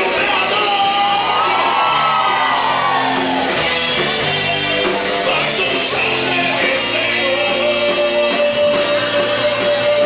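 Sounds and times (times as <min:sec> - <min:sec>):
crowd cheering: 0:00.0 - 0:06.9.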